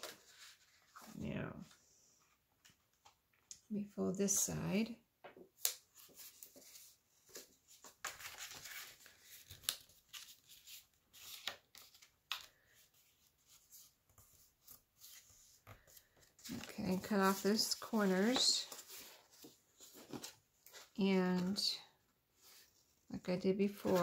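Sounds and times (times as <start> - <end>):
paper rustling and crinkling: 0.0 - 1.2, 5.6 - 21.7, 23.7 - 24.0.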